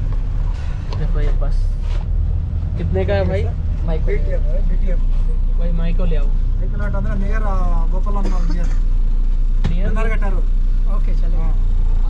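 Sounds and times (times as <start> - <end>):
bus engine idling: 0.0 - 12.0
voices talking: 2.7 - 12.0.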